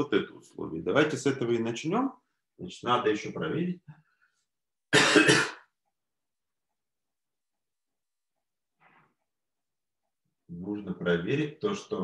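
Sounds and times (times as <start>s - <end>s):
man clearing throat: 4.9s - 5.7s.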